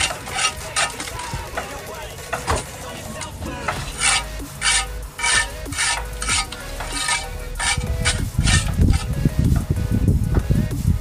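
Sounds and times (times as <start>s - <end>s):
trowel scraping plaster on wall: 0.0s - 9.2s.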